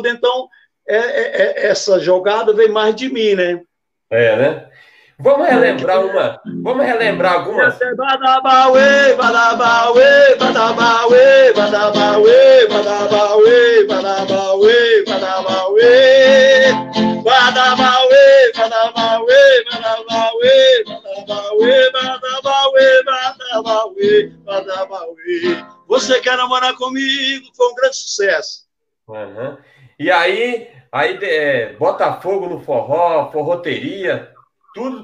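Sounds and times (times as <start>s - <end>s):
man singing: 0.0s - 3.5s, 5.2s - 28.2s.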